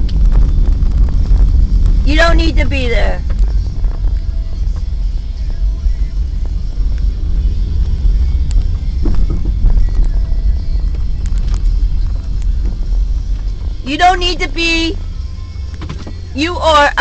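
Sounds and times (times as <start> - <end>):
car rumbling in motion: 0.0 - 17.0
faint music: 0.0 - 17.0.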